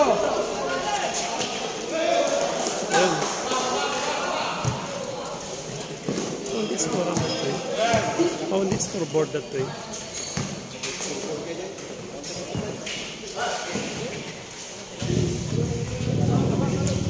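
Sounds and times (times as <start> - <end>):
spectators' voices: 0.0 - 17.0.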